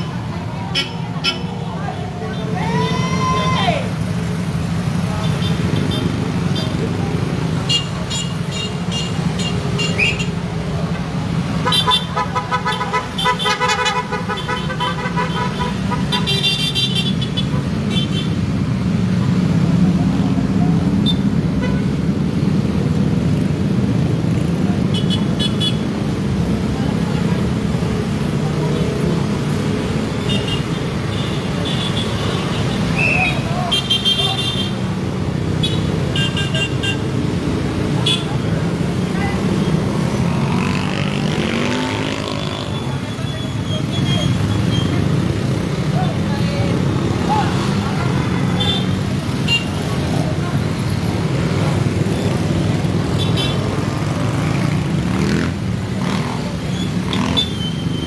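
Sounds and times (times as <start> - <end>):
engines and road noise rumble: 0.0 - 58.0
vehicle horns honking: 11.6 - 18.4, 30.2 - 34.8, 35.6 - 37.1, 38.0 - 38.4, 48.2 - 49.8, 53.2 - 53.7.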